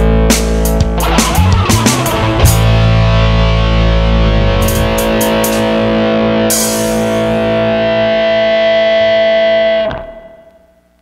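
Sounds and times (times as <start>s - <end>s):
rock band: 0.0s - 10.2s
distorted electric guitar chord: 0.0s - 10.9s
cymbal crash: 1.0s - 7.5s.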